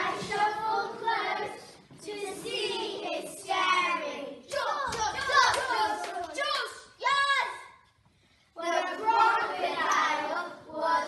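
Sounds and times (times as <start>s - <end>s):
children singing: 0.0s - 4.4s, 8.6s - 11.0s
hand claps: 4.5s - 6.4s.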